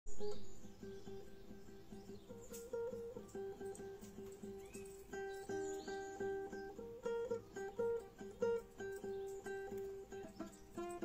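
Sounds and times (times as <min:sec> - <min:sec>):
fingerpicked classical guitar: 0:00.1 - 0:11.0.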